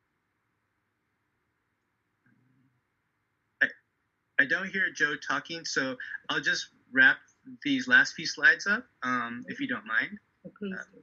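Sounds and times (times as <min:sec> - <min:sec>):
clipped voice syllable: 0:05.7 - 0:11.0.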